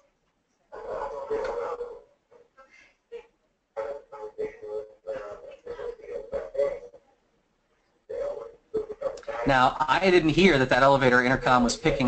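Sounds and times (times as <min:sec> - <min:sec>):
distorted voice: 0:00.7 - 0:07.2, 0:08.1 - 0:12.0.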